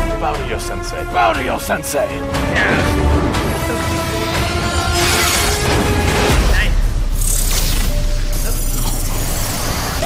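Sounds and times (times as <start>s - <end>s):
low rumbling music: 0.0s - 10.0s.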